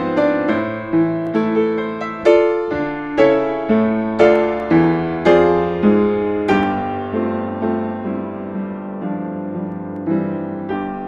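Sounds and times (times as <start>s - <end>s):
piano playing a slow hymn: 0.0s - 11.0s.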